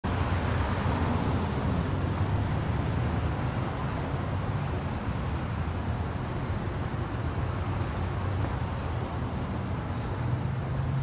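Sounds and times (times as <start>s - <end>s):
distant road traffic rumble: 0.0s - 11.0s.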